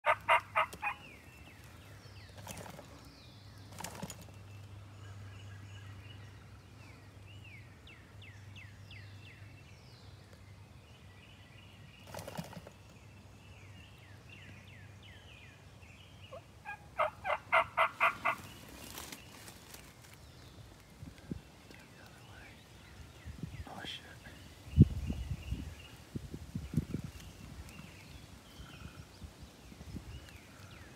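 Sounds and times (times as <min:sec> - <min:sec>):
wild turkey yelping: 0:00.0 - 0:01.1, 0:16.3 - 0:18.5
faint songbird chirps: 0:00.0 - 0:30.9.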